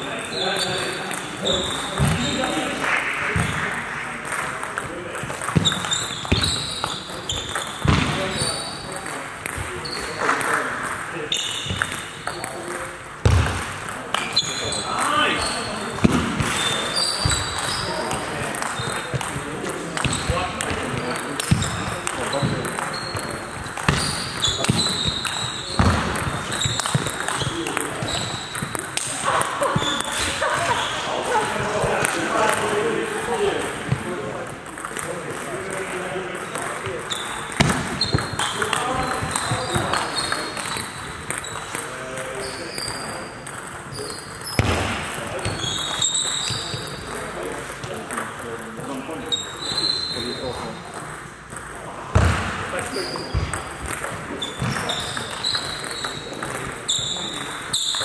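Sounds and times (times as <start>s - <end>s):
murmur of voices: 0.0s - 58.0s.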